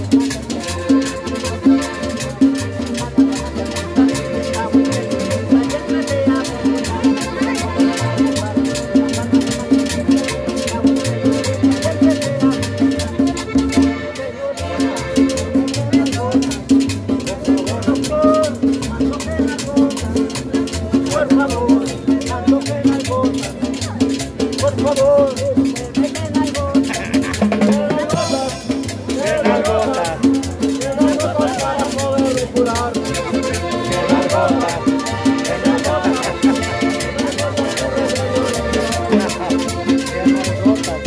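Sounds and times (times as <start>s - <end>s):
bass: 0.0s - 41.0s
driving percussion beat: 0.0s - 41.0s
guitar: 0.0s - 41.0s.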